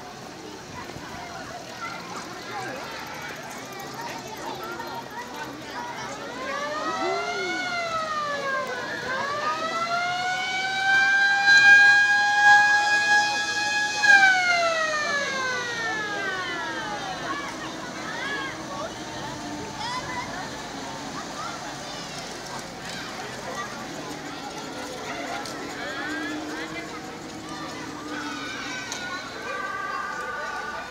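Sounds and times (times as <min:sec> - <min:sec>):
fire truck siren: 0:05.4 - 0:30.9.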